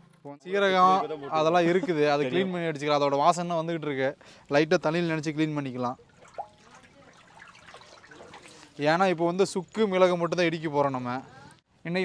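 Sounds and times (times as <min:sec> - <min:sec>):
water swishing and trickling: 0:05.1 - 0:09.4.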